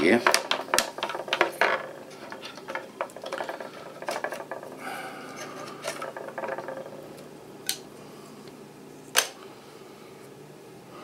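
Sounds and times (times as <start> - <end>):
memory sticks rubbing and scraping: 0.0 - 7.2.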